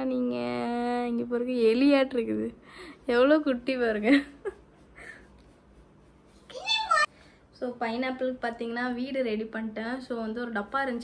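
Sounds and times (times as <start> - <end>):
woman speaking: 0.0 - 4.4, 6.7 - 11.0.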